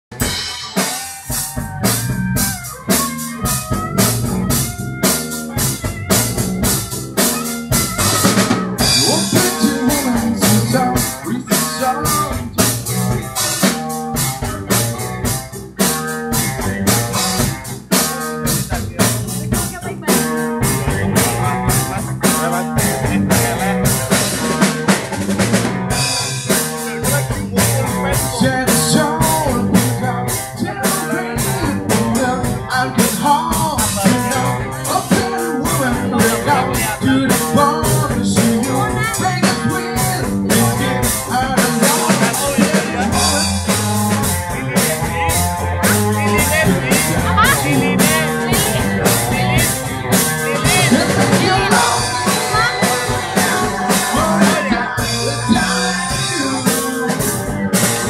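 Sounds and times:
blues band playing: 0.0s - 58.0s
drum kit beat: 0.0s - 58.0s.

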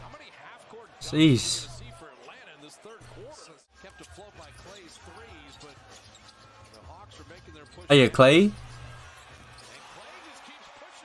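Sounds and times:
commentator talking: 1.0s - 1.8s, 7.9s - 8.6s.

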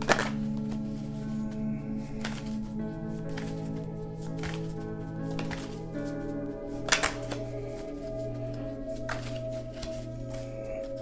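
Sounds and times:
cards snapping: 0.0s - 1.0s, 2.1s - 6.0s, 6.8s - 7.9s, 9.0s - 11.0s
cards being shuffled by hand: 0.0s - 11.0s
soft music of held tones: 0.0s - 11.0s.

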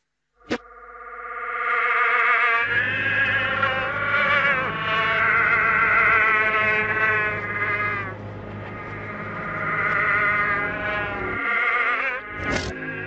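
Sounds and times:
buzzy wavering pitched tone: 0.4s - 13.0s
steady low hum: 2.6s - 11.5s.

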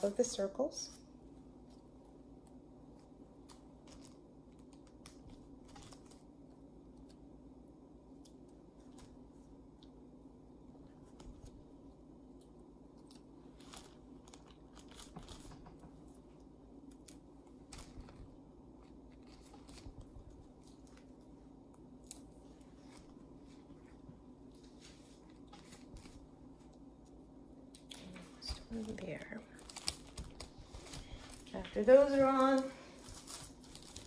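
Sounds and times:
low room hum: 0.0s - 34.0s
small clicks and crackles: 1.6s - 7.2s, 10.8s - 23.9s, 25.2s - 34.0s
plastic sheeting rustling: 27.9s - 34.0s.

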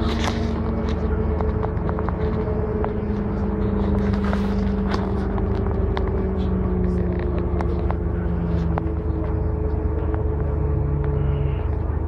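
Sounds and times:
bus engine drone: 0.0s - 12.0s.

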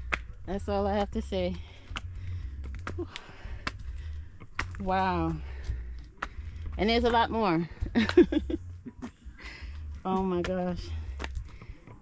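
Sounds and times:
footsteps on stone steps: 0.0s - 12.0s
low steady rumble: 0.0s - 12.0s.

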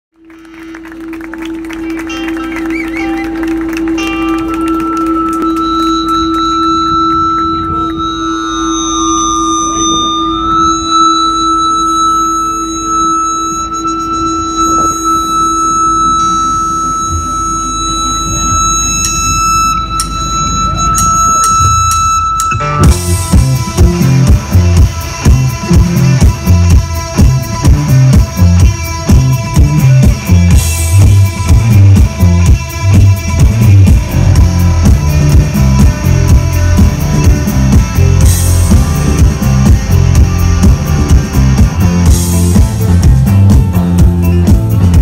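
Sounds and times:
droning held tones: 0.2s - 45.0s
drums and full band: 0.2s - 45.0s
light guitar playing: 0.2s - 45.0s.

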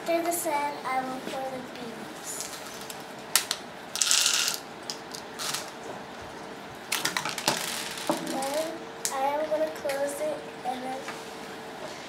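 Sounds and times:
plastic labware clicking: 2.4s - 5.8s, 6.9s - 8.7s
pellets rattling into plastic funnel: 4.0s - 5.7s.

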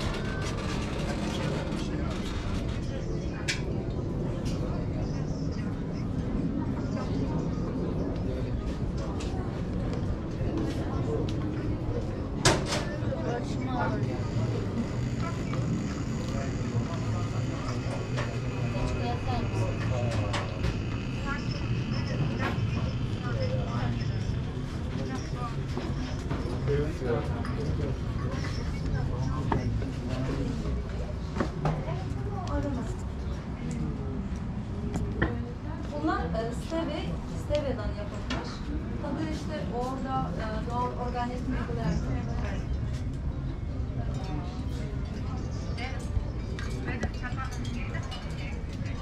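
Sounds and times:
steady low rumble: 0.0s - 26.7s
people's voices: 0.0s - 49.0s.

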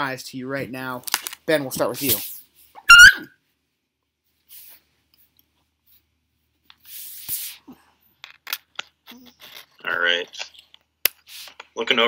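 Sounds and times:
high-pitched yelp: 2.8s - 3.3s.

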